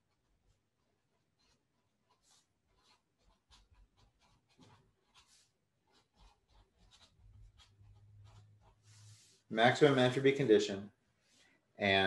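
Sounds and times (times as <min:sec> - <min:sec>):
marker pen scratching on paper: 0:00.0 - 0:10.1.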